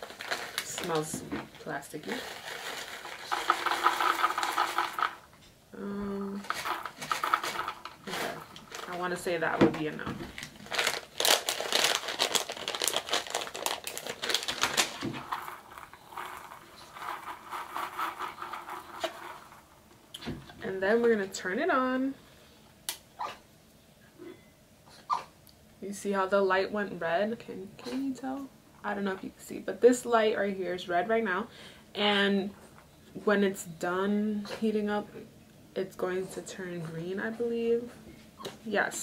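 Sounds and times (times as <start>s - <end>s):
wax beads pouring into bowl: 0.0s - 5.3s, 6.3s - 9.3s, 10.6s - 19.7s.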